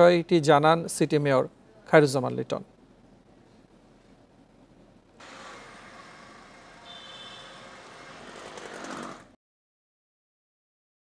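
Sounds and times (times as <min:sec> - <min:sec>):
road traffic: 0:05.2 - 0:09.4
vehicle approaching: 0:05.2 - 0:09.4.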